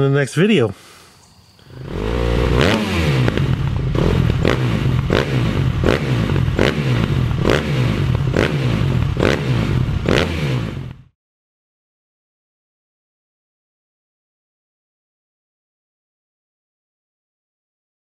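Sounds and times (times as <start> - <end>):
low pulsing rumble: 1.8 - 11.1.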